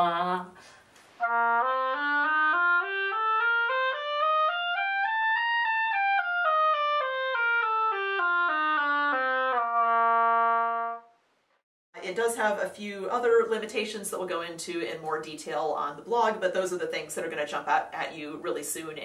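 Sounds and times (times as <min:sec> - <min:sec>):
oboe playing a scale: 0:01.2 - 0:11.1.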